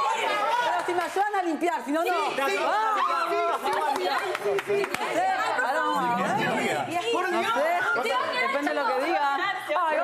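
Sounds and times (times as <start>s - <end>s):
people chattering excitedly: 0.0s - 10.0s.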